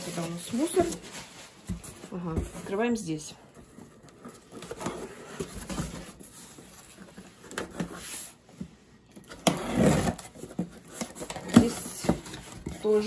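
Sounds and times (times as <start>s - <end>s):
cardboard box rustling: 0.0s - 8.4s, 9.3s - 13.0s.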